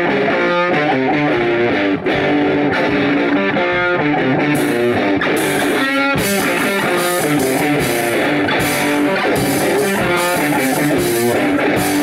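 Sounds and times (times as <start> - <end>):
electric guitar rock riff: 0.0 - 12.0
drum kit with cymbals: 4.5 - 12.0.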